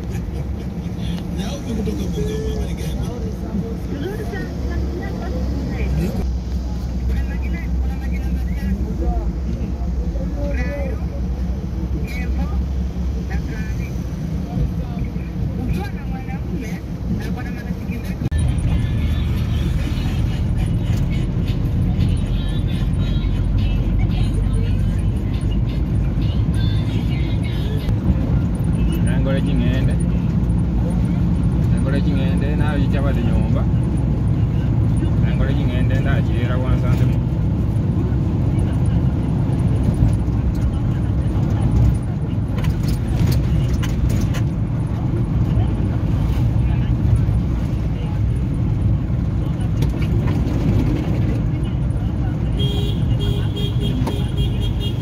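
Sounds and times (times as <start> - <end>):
vehicle engine and tyres rumbling: 0.0 - 55.0.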